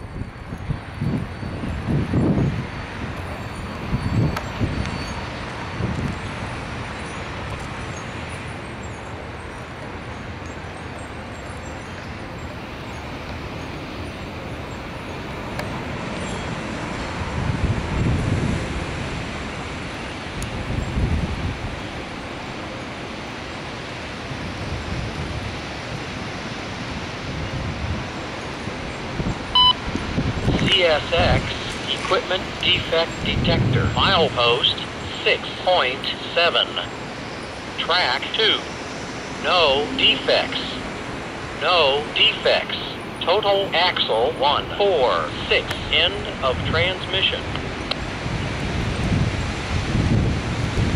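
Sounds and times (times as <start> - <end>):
radio voice: 30.5 - 37.0, 37.7 - 38.7, 39.4 - 40.9, 41.6 - 47.6.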